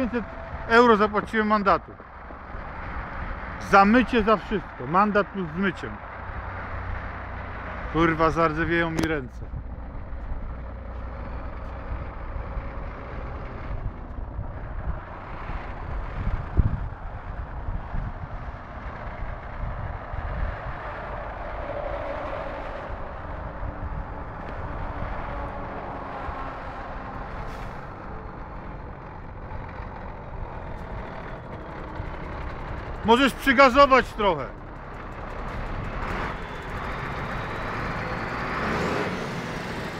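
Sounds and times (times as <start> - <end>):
diesel truck engine rumbling: 0.0 - 39.9.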